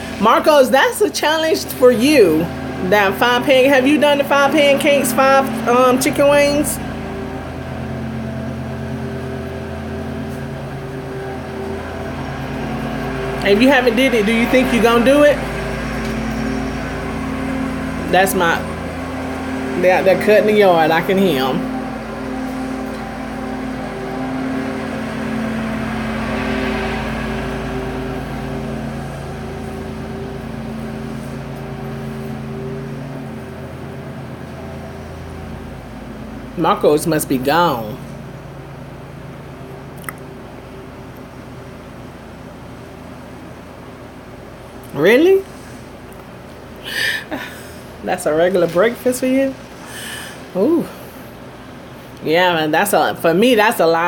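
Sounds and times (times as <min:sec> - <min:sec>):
lawn mower engine running: 0:00.0 - 0:52.5.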